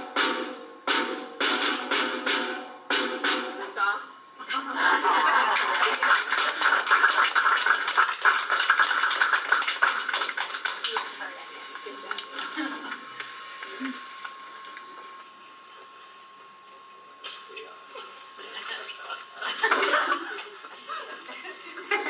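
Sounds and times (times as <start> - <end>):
audience applauding: 5.2 - 11.4.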